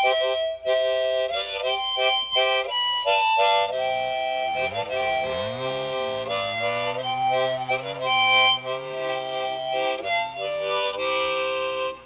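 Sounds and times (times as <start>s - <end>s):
harmonica chords: 0.0s - 12.0s.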